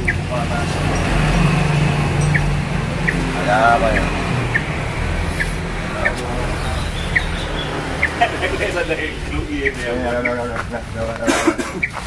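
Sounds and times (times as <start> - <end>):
faint voices: 0.0 - 11.9.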